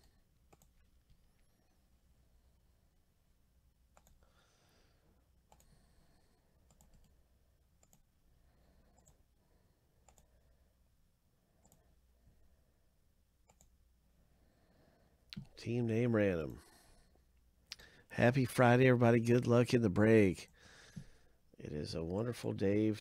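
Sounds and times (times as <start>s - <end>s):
computer mouse clicks: 0.0s - 1.2s, 3.9s - 4.2s, 5.4s - 5.8s, 6.6s - 7.2s, 7.8s - 8.1s, 9.0s - 9.2s, 10.0s - 10.3s, 11.6s - 11.9s, 13.4s - 13.8s
low room hum: 0.0s - 23.0s.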